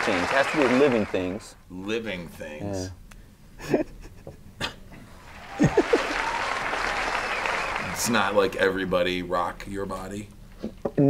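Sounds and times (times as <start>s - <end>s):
audience applause: 0.0s - 1.5s, 5.1s - 9.6s
people laughing: 3.6s - 8.9s.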